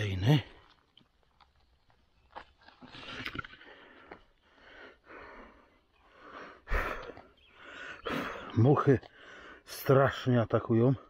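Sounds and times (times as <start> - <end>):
leaves and twigs rustling: 0.0 - 4.5.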